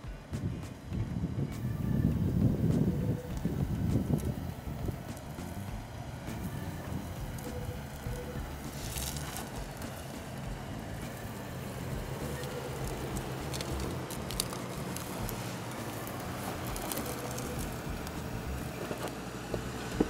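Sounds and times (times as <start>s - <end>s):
truck engine running at low speed: 0.0s - 20.0s
twigs crackling and snapping: 6.3s - 20.0s.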